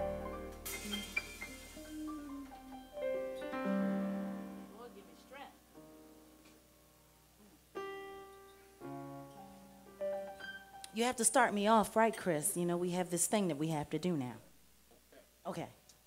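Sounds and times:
piano chords: 0.0 - 11.3.

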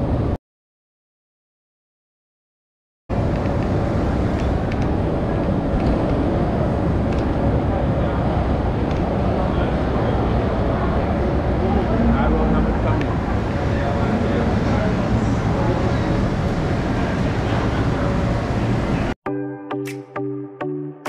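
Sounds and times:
low traffic hum: 3.1 - 19.2.

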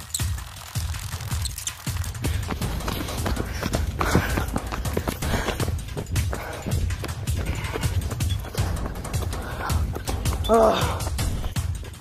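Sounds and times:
thumps and knocks from running: 2.1 - 11.8.

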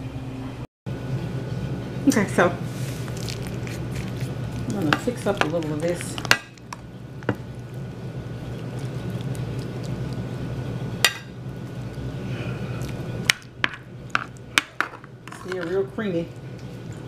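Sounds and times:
utensil clinking and scraping dish: 14.2 - 16.0.

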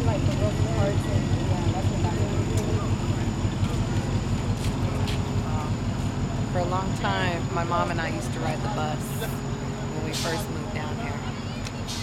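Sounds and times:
vehicle engines rumbling: 0.0 - 12.0
faint talk: 6.6 - 12.0.

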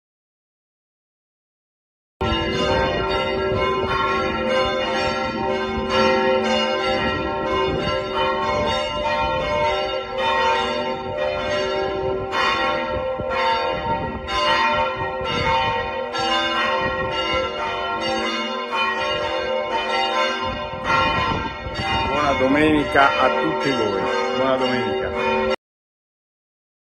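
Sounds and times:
church bells pealing: 2.2 - 25.6.

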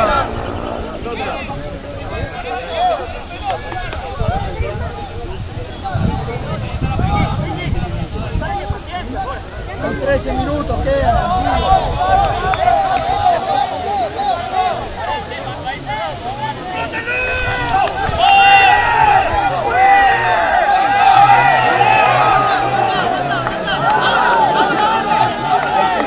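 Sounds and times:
many voices shouting: 0.0 - 26.0.

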